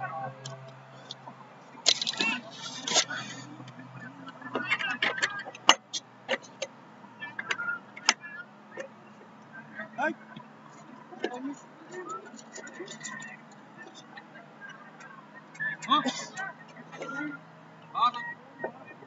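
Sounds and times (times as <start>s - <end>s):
distant calls and shouts: 0.0s - 19.0s.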